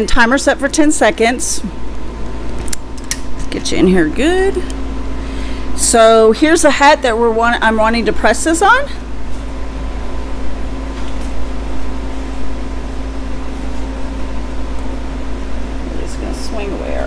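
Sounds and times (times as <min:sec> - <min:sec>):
mechanical hum: 0:00.0 - 0:17.0.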